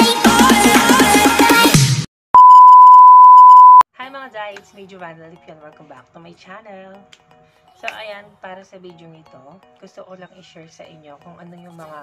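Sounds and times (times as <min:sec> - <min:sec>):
electronic sine beep: 0:02.4 - 0:03.8.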